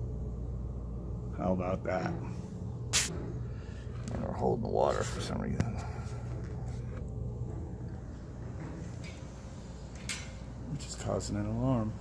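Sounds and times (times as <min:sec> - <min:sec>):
hvac machinery humming: 0:00.0 - 0:12.0.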